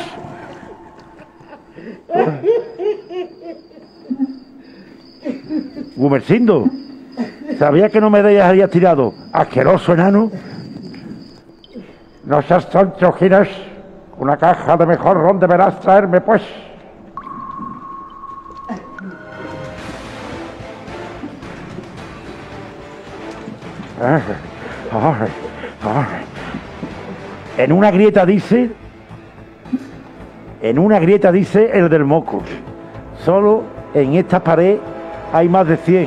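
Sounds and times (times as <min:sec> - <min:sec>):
person hooting: 0:00.0 - 0:05.9, 0:18.5 - 0:19.9
crickets chirring: 0:00.0 - 0:36.0
whistle-like tone: 0:17.2 - 0:20.5.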